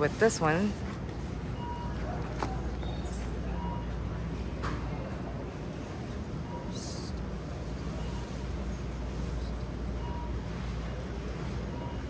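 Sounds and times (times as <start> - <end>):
faint electronic beep: 1.5 - 2.2, 6.4 - 7.2, 9.4 - 10.7, 11.6 - 12.0.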